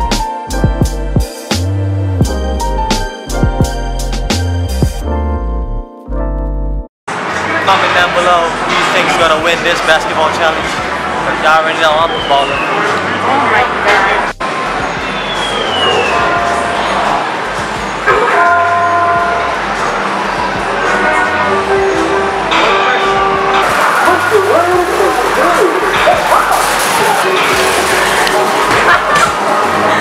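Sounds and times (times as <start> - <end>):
electronic arcade music: 0.0 - 6.9, 13.2 - 30.0
voices: 7.3 - 30.0.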